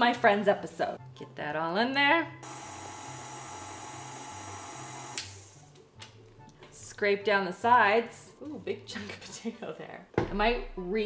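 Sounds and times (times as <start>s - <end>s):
stand mixer motor hum: 2.4s - 5.6s.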